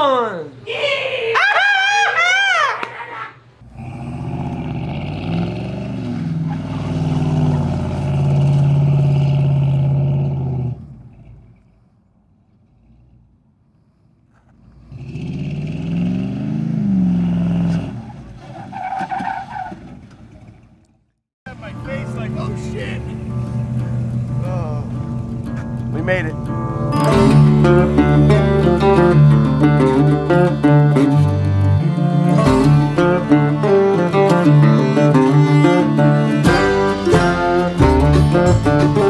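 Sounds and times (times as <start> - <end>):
truck engine revving: 3.6 - 13.7, 14.3 - 39.0.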